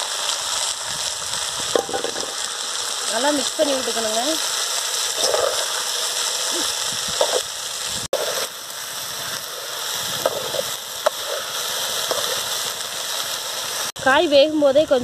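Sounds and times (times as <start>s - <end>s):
beans sizzling in metal pan: 0.0s - 15.0s
steel ladle stirring and scraping: 5.0s - 6.2s, 8.2s - 12.7s.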